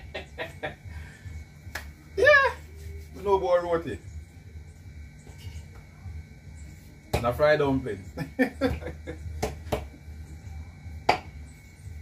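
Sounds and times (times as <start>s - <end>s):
man laughing: 0.0s - 0.9s, 8.2s - 9.3s
steady low hum: 0.0s - 12.0s.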